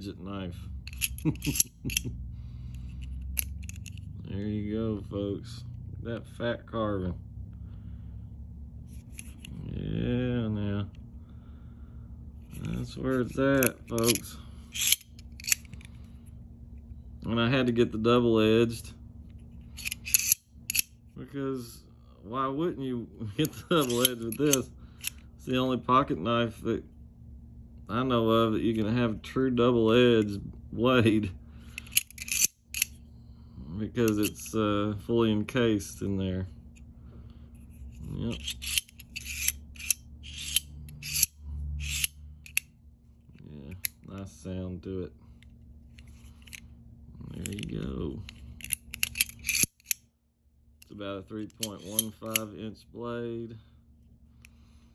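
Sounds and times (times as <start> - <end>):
knife blade metallic clicks: 19.8 - 20.9, 23.4 - 25.2, 38.3 - 42.7, 51.5 - 52.5
faint sliding rasp: 37.6 - 42.6, 51.5 - 52.5.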